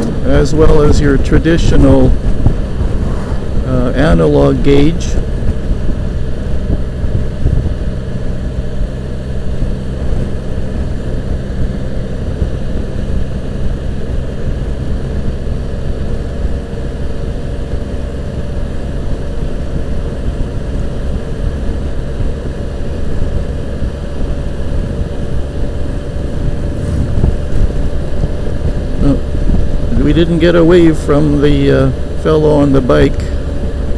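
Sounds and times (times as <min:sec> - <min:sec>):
wind noise on microphone: 0:00.0 - 0:16.6, 0:18.9 - 0:31.1
motorcycle engine humming: 0:00.0 - 0:33.9.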